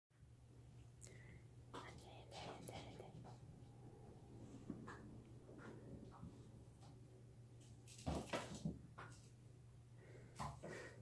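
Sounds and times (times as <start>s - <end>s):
low steady hum: 0.2s - 11.0s
person whispering: 1.7s - 3.6s.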